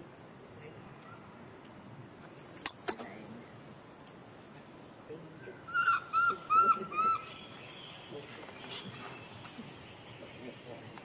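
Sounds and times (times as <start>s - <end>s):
animal high-pitched calls: 5.7s - 7.3s.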